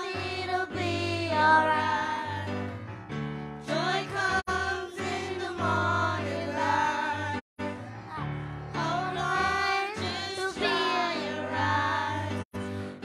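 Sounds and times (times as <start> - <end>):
children singing: 3.6 - 12.5.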